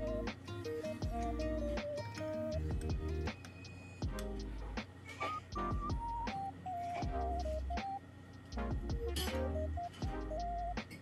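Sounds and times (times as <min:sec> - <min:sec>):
melody over bass and beat: 0:00.0 - 0:00.3, 0:00.9 - 0:03.4, 0:04.0 - 0:04.8, 0:05.5 - 0:08.0, 0:08.6 - 0:10.9.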